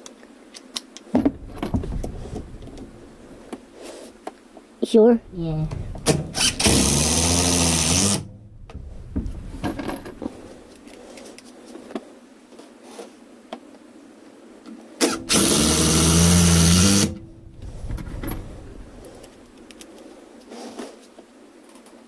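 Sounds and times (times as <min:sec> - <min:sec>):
handling knocks and clicks: 0:00.0 - 0:03.7, 0:05.3 - 0:07.0, 0:08.2 - 0:12.0, 0:17.1 - 0:20.0
impact driver driving screw into wood: 0:05.8 - 0:10.2, 0:15.0 - 0:17.2.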